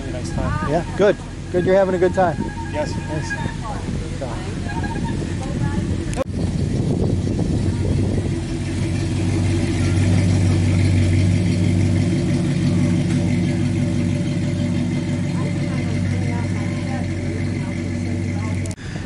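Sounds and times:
pickup truck engine driving past: 0.0s - 19.0s.

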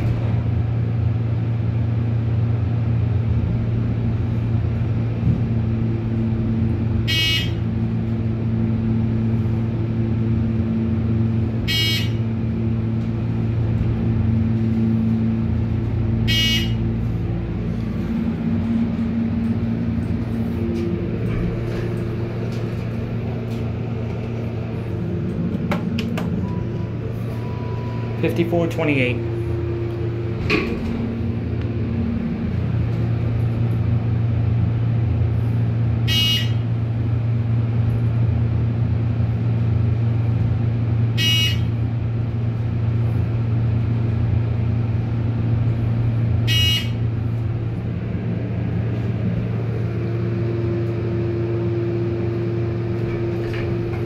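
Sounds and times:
hydraulic pump hum: 0.0s - 54.0s
short electronic beeps: 11.7s - 12.2s, 16.3s - 16.8s, 26.4s - 28.3s, 46.5s - 47.0s
elevator door clicks: 25.2s - 26.8s, 29.9s - 31.7s.

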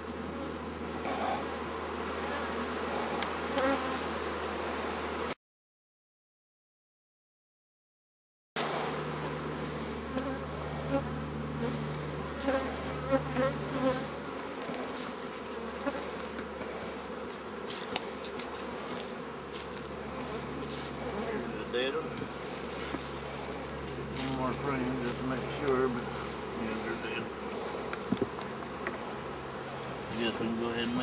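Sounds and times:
bees buzzing: 0.0s - 5.4s, 8.6s - 31.0s
single bees whining past: 0.0s - 5.4s, 8.6s - 30.7s.

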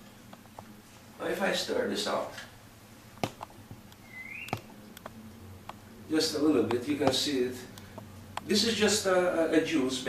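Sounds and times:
glass squeak: 4.0s - 4.7s.

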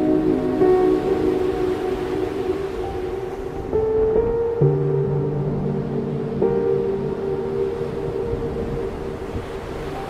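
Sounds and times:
ambient music with held tones: 0.0s - 10.0s
storm and surf noise: 0.0s - 10.0s.

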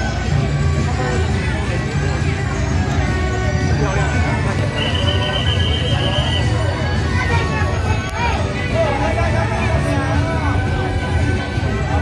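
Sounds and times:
crowd noise: 0.0s - 12.0s
drums: 0.0s - 12.0s.

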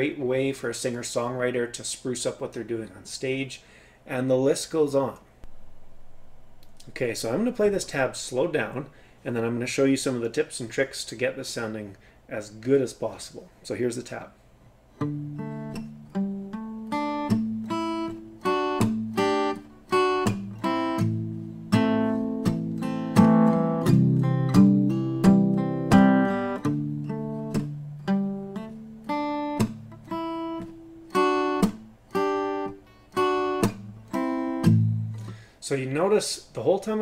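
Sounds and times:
palm-muted acoustic guitar chords: 5.4s - 8.3s, 15.0s - 35.5s.

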